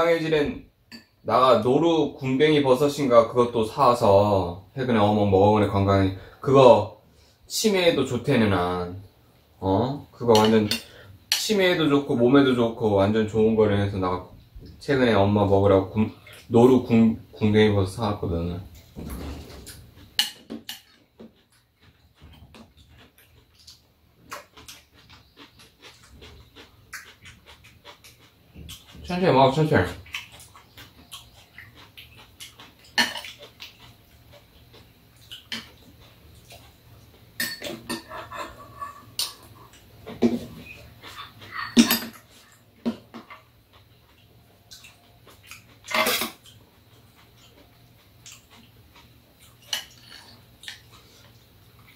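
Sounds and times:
chewing smacks: 20.7s - 29.1s, 29.9s - 51.9s
spoon and chopsticks clinking on bowls: 37.4s - 39.4s, 41.4s - 42.3s.

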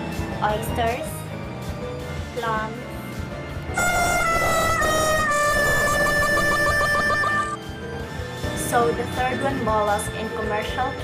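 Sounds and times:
horn-like sound effect: 3.8s - 7.6s.

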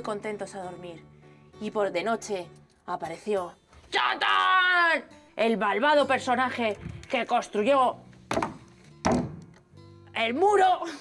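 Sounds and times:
faint background music: 0.0s - 11.0s
iron thunking on tabletop: 8.3s - 9.6s.

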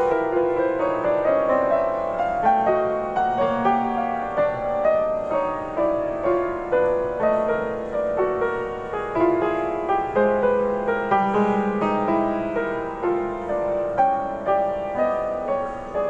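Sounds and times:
solo piano: 0.0s - 16.0s.

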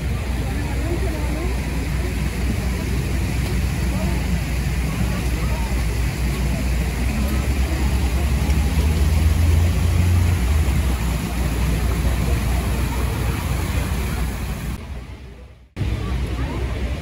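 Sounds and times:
fountain water rushing: 0.0s - 17.0s
low traffic rumble: 0.0s - 17.0s.

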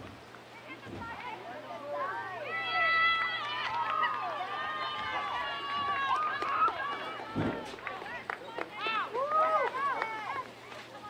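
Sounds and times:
players shouting: 1.8s - 10.5s
dull low thump: 7.3s - 7.7s.

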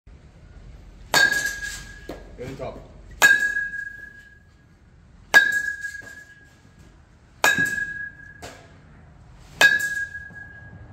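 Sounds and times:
metal bat hitting balls: 1.0s - 2.4s, 3.0s - 4.6s, 5.2s - 10.9s.

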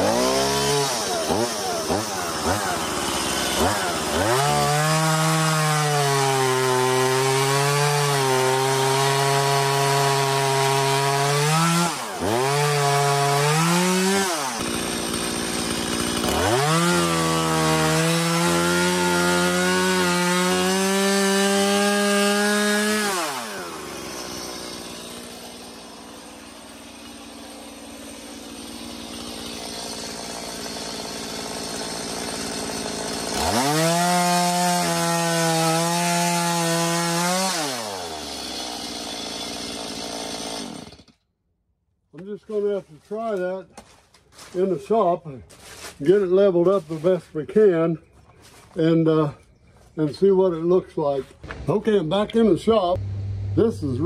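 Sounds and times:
chainsaw cutting log: 0.0s - 41.2s, 42.2s - 47.3s, 51.4s - 54.0s.

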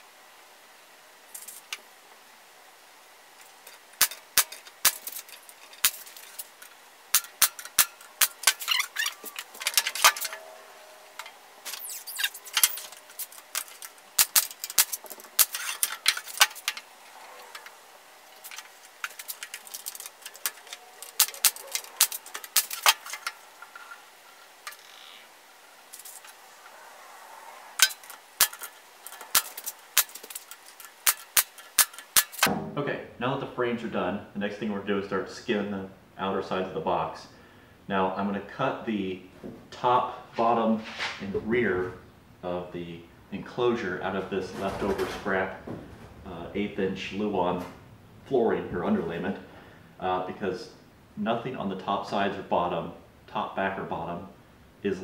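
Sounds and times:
wooden pieces knocking together: 11.2s - 24.8s.

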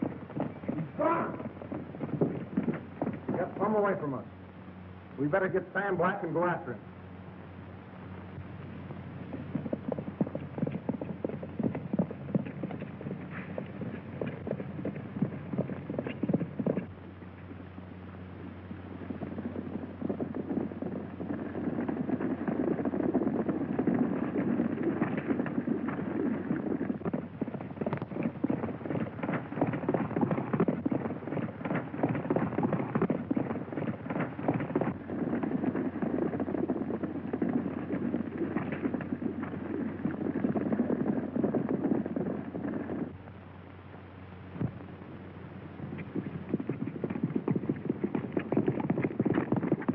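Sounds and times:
horses galloping hoofbeats: 0.0s - 49.9s.

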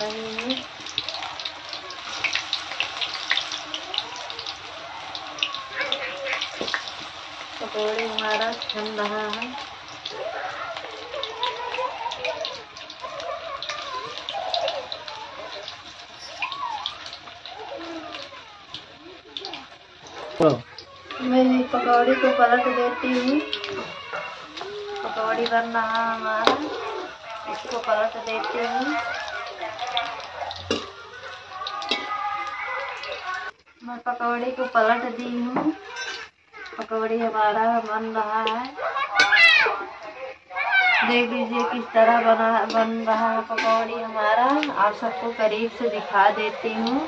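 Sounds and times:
batter sizzling in hot oil: 0.0s - 47.0s.

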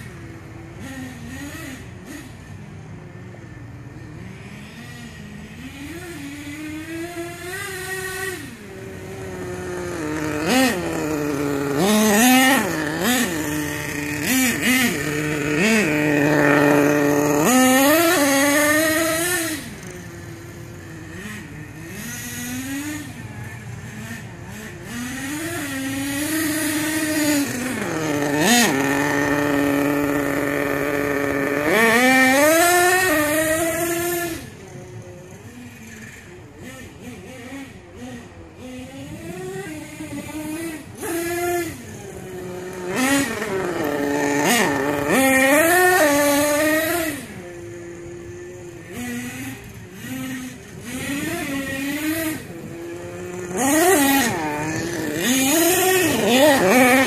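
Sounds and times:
rc truck engine revving: 0.0s - 57.0s.

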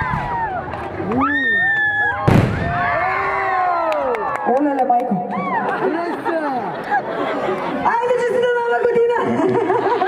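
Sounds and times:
crowd cheering: 0.0s - 10.0s
firework bang: 2.2s - 2.9s.

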